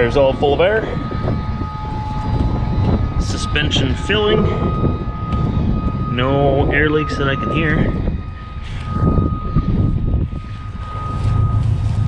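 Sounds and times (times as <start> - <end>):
air suspension filling with air: 7.7 - 12.0.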